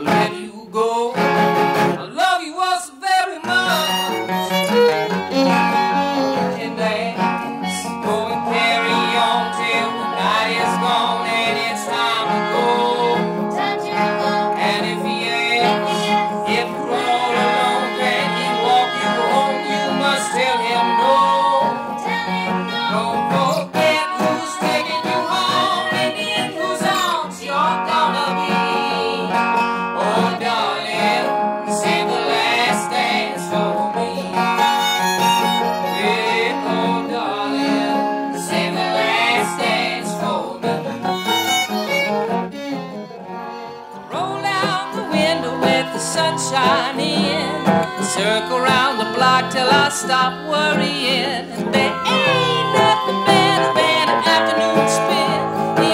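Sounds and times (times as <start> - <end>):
string band playing: 3.5 - 55.9.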